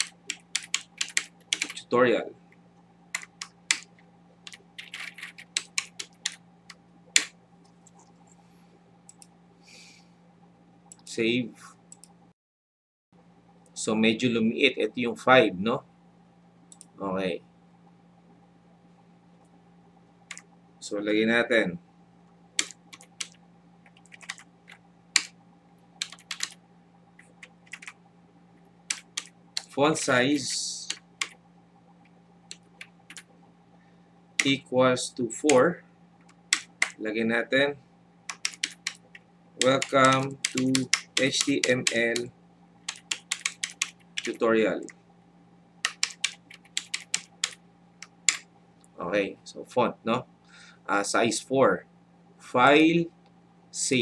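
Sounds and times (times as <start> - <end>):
computer keyboard typing: 0.0 - 1.8, 3.1 - 8.0, 22.6 - 25.3, 26.0 - 26.6, 27.2 - 28.0, 28.9 - 31.4, 32.5 - 33.3, 34.4 - 34.6, 36.2 - 37.0, 38.3 - 44.4, 45.8 - 48.4
faint hum: 0.0 - 12.4, 13.2 - 54.0.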